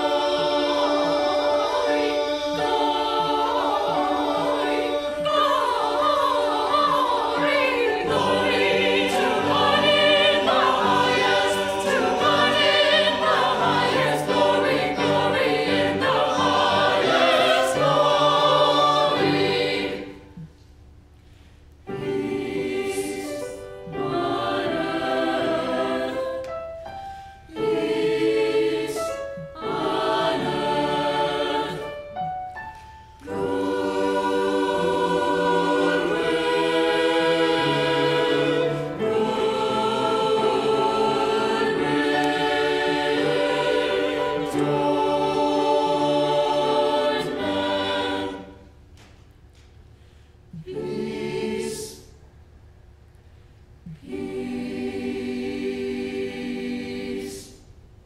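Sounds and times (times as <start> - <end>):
mixed choir singing: 0.0 - 20.5, 21.9 - 32.4, 33.2 - 48.8, 50.6 - 52.3, 53.9 - 57.7.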